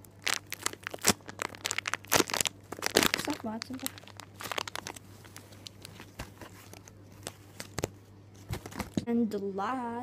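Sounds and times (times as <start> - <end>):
plastic packaging crinkling: 0.0 - 9.0
sharp plastic crackles: 0.0 - 9.1
steady low hum: 0.0 - 10.0.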